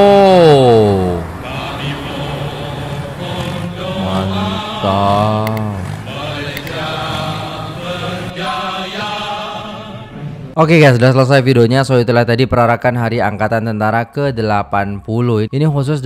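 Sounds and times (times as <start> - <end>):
men singing military song: 1.2 - 10.1
backing music: 1.3 - 10.6.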